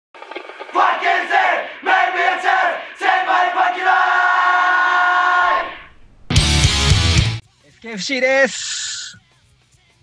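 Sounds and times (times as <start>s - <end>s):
crowd shouting in unison: 0.7s - 6.1s.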